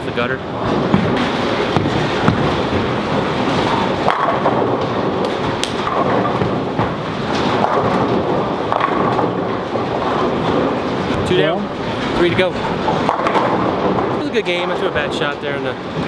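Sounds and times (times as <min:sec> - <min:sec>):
bowling balls rolling: 0:00.0 - 0:16.0
bowling pins crashing: 0:00.5 - 0:16.0.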